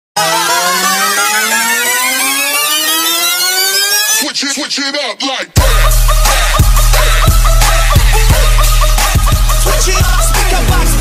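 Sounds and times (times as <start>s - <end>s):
motorcycle engine accelerating: 0.2s - 4.1s.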